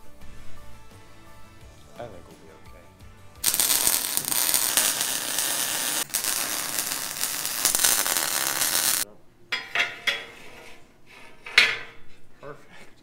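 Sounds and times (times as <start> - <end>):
welding arc crackling: 3.4 - 9.0.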